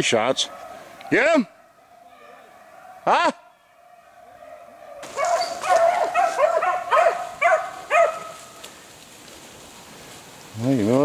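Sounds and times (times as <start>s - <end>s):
dogs baying: 0.4s - 8.6s.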